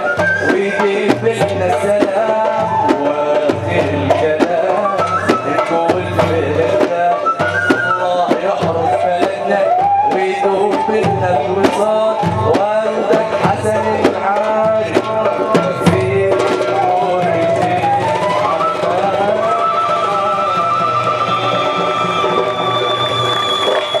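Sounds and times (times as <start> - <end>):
man singing through microphone: 0.0 - 21.7
flute: 0.0 - 24.0
hand drum: 0.0 - 24.0.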